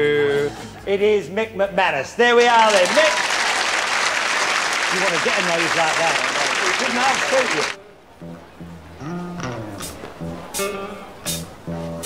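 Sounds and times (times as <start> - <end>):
studio audience applauding: 2.5 - 7.8.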